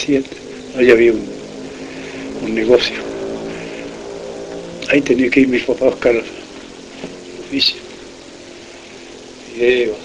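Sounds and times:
low drone of held tones: 0.0s - 10.0s.

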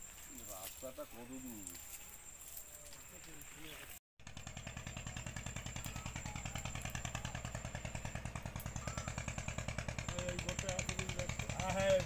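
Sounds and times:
motorboat engine chugging: 4.2s - 12.0s.

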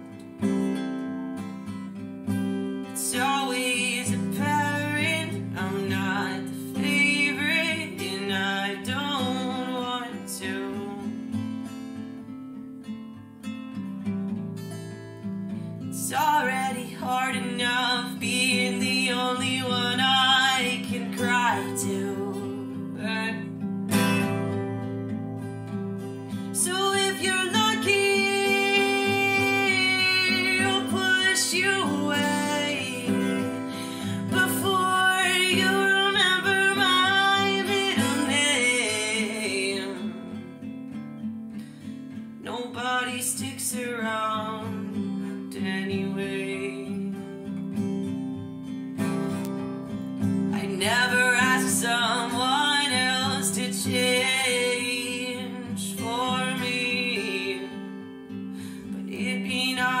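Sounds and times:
acoustic guitar strumming: 0.0s - 60.0s
woman singing: 2.4s - 11.6s, 15.8s - 24.8s, 26.1s - 41.0s, 42.3s - 47.6s, 50.2s - 60.0s.

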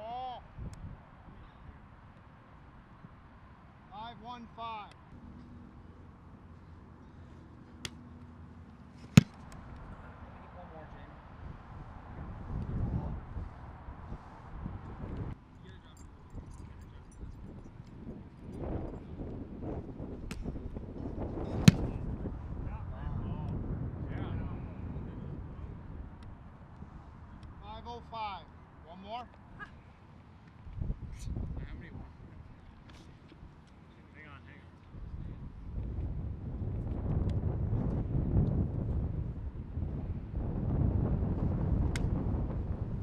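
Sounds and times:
outdoor noise: 0.0s - 43.0s
foot kicking football: 9.0s - 9.8s, 21.4s - 22.3s.

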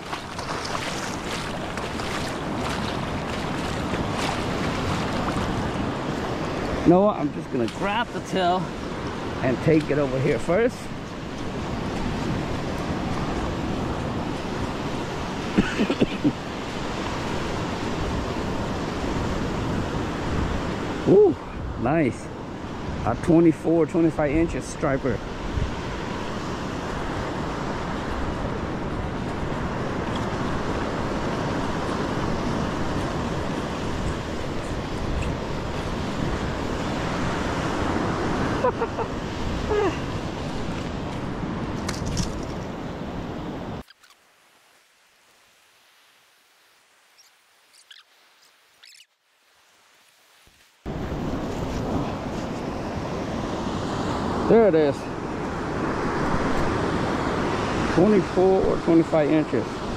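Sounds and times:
ocean surf breaking: 0.0s - 59.9s.

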